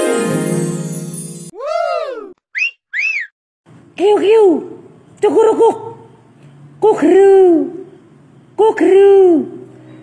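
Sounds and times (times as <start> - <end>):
whistled tones: 2.5 - 3.4.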